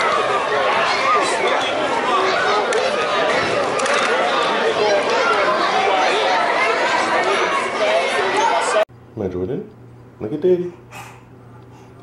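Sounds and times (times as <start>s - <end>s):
crowd chatter echoing in a hall: 0.0s - 8.9s.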